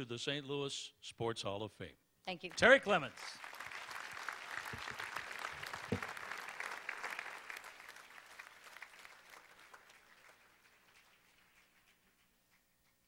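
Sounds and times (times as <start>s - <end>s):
audience applauding: 2.5s - 12.4s.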